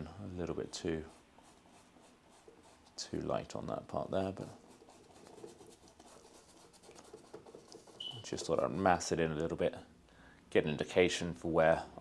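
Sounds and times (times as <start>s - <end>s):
paintbrush scratching on canvas: 0.3s - 8.7s.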